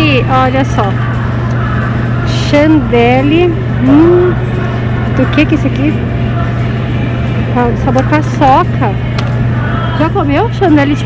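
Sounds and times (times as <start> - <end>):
woman's voice: 0.0 - 1.0, 2.3 - 4.4, 5.2 - 6.1, 7.5 - 9.1, 9.9 - 11.0
refrigerator hum: 0.0 - 11.0.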